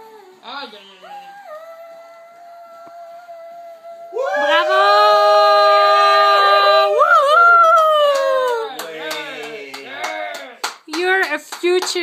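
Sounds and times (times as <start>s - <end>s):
girl singing a long note: 1.0s - 7.0s
people calling out: 4.1s - 10.4s
hand claps: 7.5s - 12.0s.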